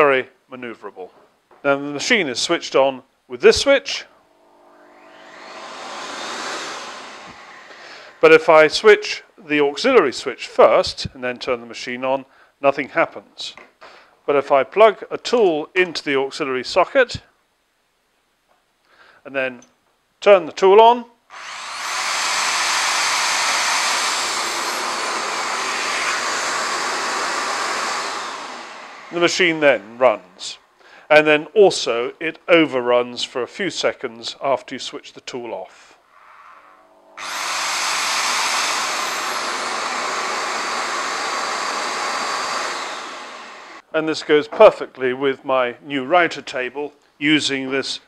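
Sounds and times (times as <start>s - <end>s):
vacuum extractor motor running: 4.2s - 8.2s, 21.4s - 30.0s, 36.8s - 43.8s.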